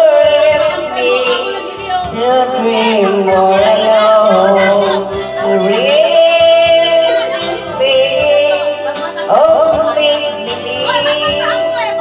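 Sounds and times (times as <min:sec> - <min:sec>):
backing track: 0:00.0 - 0:12.0
woman singing into a microphone: 0:00.0 - 0:12.0.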